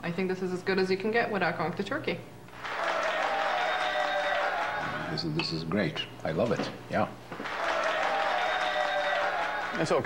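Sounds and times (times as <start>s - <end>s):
recorded applause: 2.6s - 5.1s, 7.4s - 10.0s.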